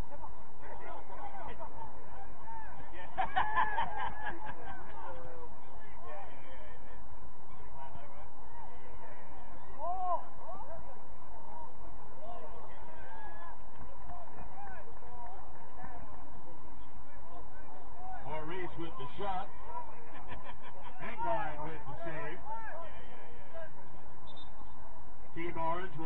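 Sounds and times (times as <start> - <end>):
low background noise: 0.0 - 26.0.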